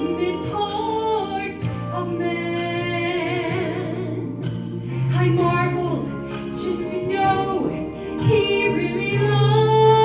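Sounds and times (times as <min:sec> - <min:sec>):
woman singing gospel solo: 0:00.0 - 0:04.5, 0:05.1 - 0:10.0.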